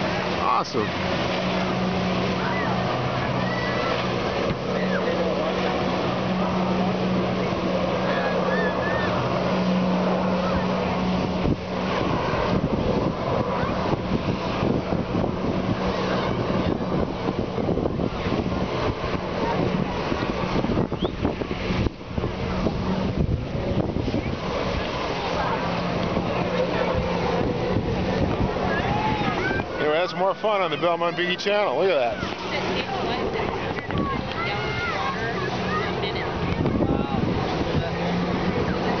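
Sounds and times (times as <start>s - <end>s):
crowd chatter: 0.0s - 39.0s
watercraft engine droning: 0.0s - 39.0s
wind buffeting microphone: 0.0s - 39.0s.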